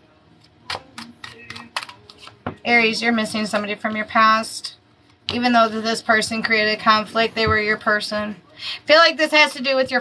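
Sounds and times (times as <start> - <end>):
cards clicking and snapping: 0.6 - 2.4.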